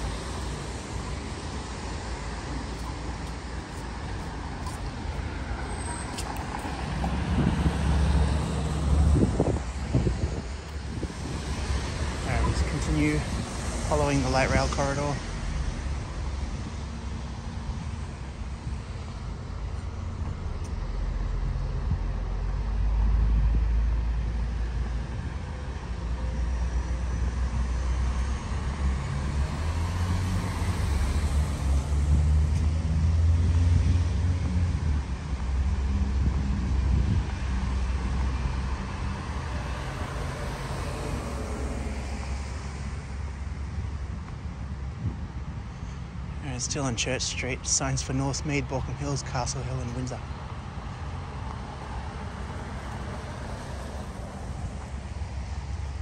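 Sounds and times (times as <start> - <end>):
steady low traffic rumble: 0.0 - 56.0
vehicles passing on wet road: 0.0 - 56.0.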